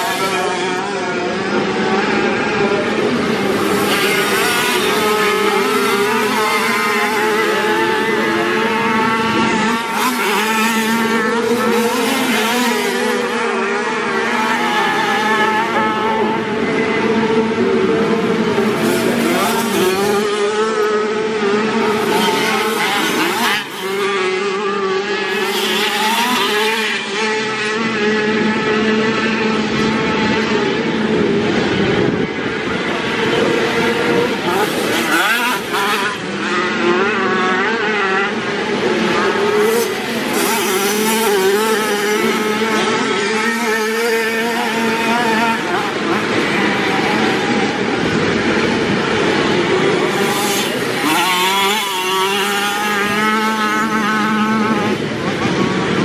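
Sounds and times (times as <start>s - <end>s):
motocross bike engines revving: 0.0s - 56.0s.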